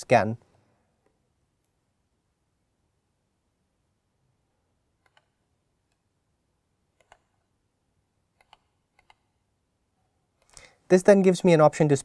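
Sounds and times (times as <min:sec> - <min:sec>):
faint computer mouse clicks: 0:05.0 - 0:06.0, 0:07.0 - 0:07.4, 0:08.4 - 0:09.3.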